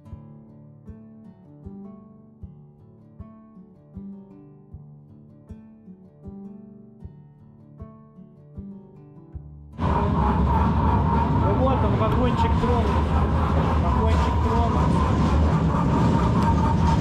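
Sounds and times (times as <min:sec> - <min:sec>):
ride car running noise: 0:09.8 - 0:17.0
steady whine: 0:09.8 - 0:17.0.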